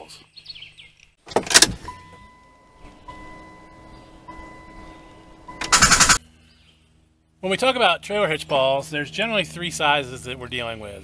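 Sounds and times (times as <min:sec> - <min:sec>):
lower electronic tone: 0:01.8 - 0:06.2
pulsing high electronic tone: 0:02.0 - 0:06.2.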